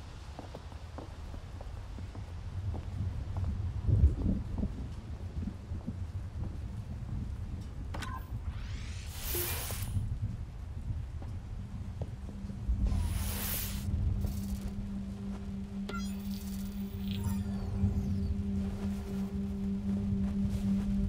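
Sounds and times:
steady low hum: 0:01.5 - 0:21.0
low rumbling drone: 0:08.2 - 0:21.0
hissing swells: 0:08.4 - 0:10.0, 0:12.6 - 0:19.4.

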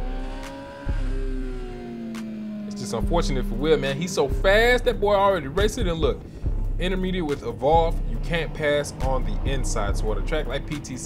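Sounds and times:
motorcycle engine: 0:00.0 - 0:11.0
wind and road noise: 0:00.0 - 0:11.0.

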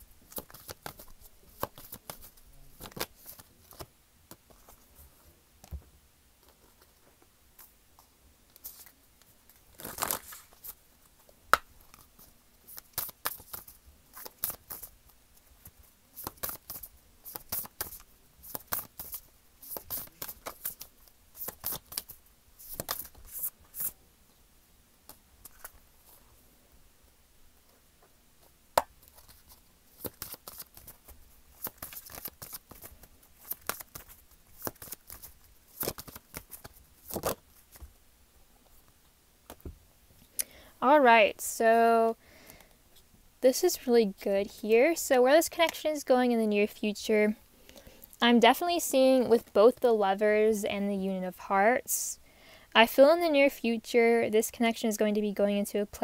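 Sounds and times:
cards being shuffled: 0:00.3 - 0:04.9, 0:08.5 - 0:10.8, 0:11.5 - 0:14.9, 0:15.6 - 0:24.0, 0:25.1 - 0:26.2, 0:28.8 - 0:37.9.

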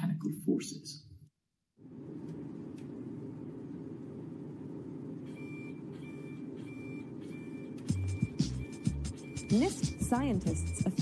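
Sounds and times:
electronic beeps: 0:05.3 - 0:11.0
background music with bass line: 0:07.8 - 0:11.0.

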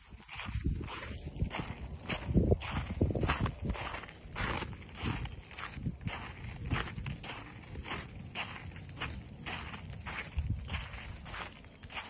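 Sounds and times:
footsteps crunching in snow: 0:00.0 - 0:12.0.

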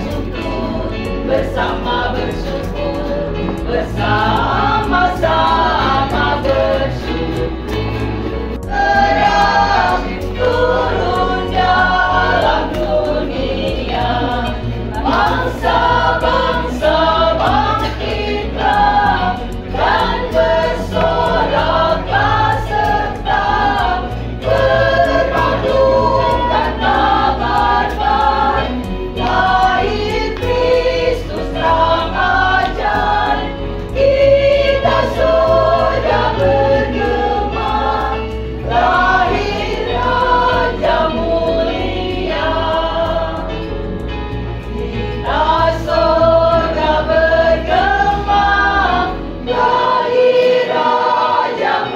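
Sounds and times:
low keyboard accompaniment: 0:00.0 - 0:51.9
women's choir singing a hymn: 0:00.0 - 0:51.9.

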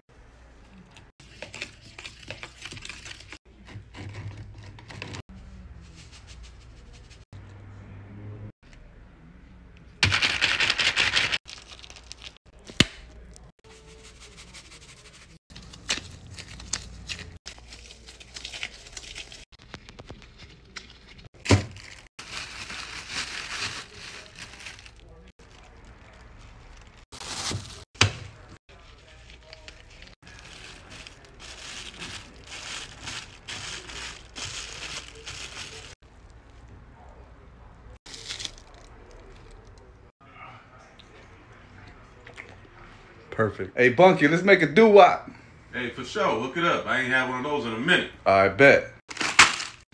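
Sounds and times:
plastic spoon stirring paste: 0:01.2 - 0:05.2
plastic bag crinkling: 0:10.2 - 0:12.4, 0:21.4 - 0:27.8, 0:28.8 - 0:36.0.

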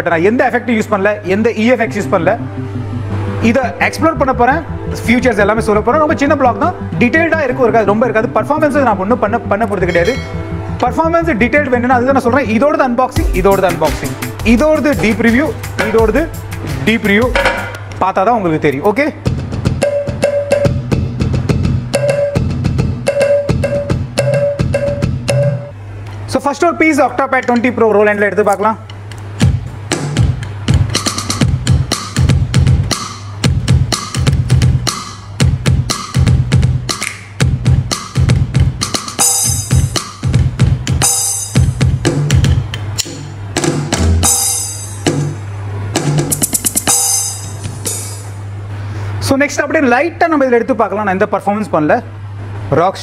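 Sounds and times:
bass line: 0:01.3 - 0:17.9
electronic percussion pad rhythm: 0:09.5 - 0:12.2, 0:13.2 - 0:17.9, 0:19.2 - 0:25.8, 0:29.0 - 0:48.5
repeated mid-pitched note: 0:09.6 - 0:11.7, 0:21.9 - 0:25.8.

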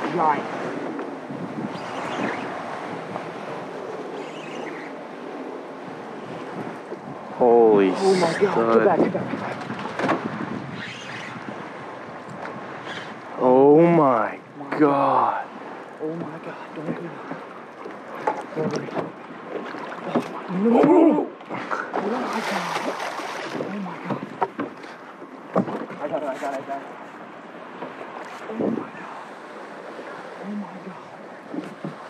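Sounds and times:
wind on microphone: 0:00.0 - 0:13.4, 0:20.0 - 0:24.8, 0:28.4 - 0:32.0
water washing around boat: 0:00.0 - 0:32.0.

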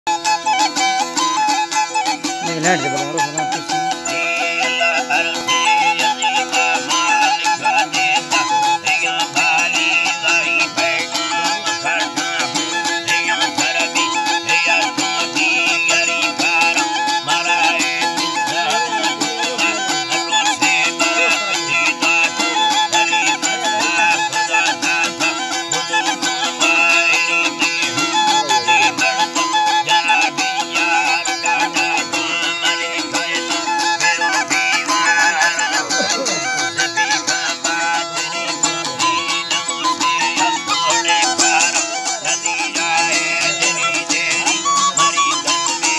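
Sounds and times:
flute melody: 0:00.1 - 0:45.9
rapidly strummed long-necked lute: 0:00.1 - 0:45.9.

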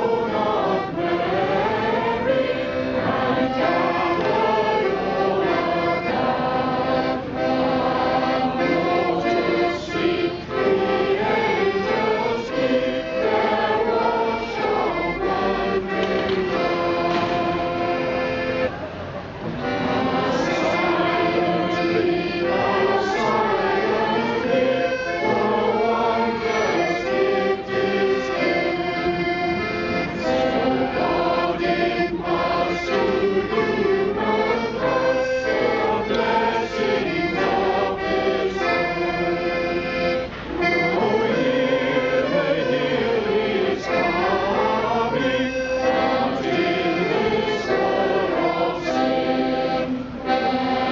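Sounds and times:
children's choir singing: 0:00.0 - 0:50.9
instrumental accompaniment: 0:00.0 - 0:50.9.

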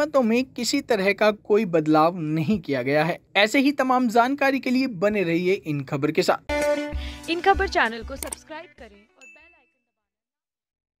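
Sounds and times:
bright bell ding: 0:09.2 - 0:09.8
faint jingle: 0:09.2 - 0:10.0.

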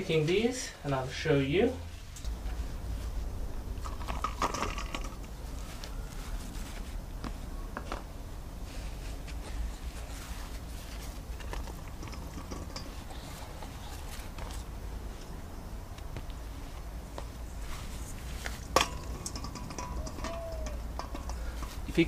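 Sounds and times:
rustling leaves: 0:00.0 - 0:22.0
steady low rumble: 0:00.0 - 0:22.0.

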